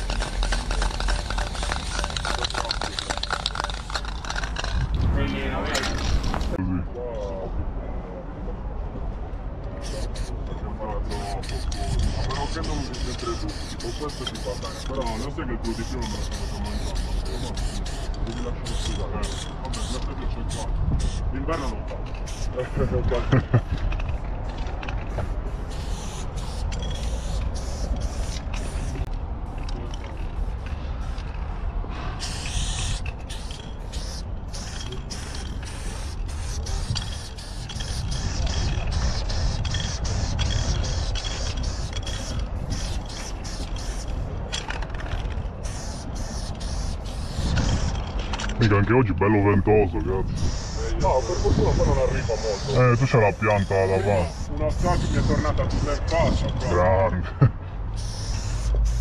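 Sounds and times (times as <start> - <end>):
steady low rumble: 0.0 - 9.7
aerosol spray can hissing: 25.2 - 29.0, 32.2 - 44.2, 45.6 - 47.9, 50.4 - 52.7, 53.7 - 55.2, 58.0 - 59.0.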